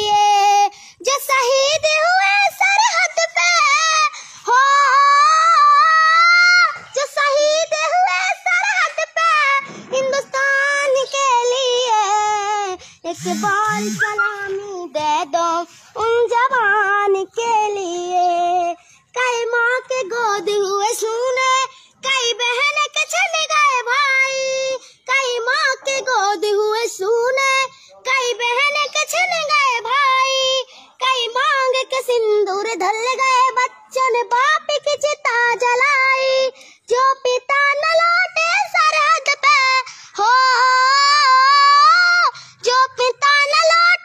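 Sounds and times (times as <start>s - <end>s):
girl singing: 0.0s - 44.0s.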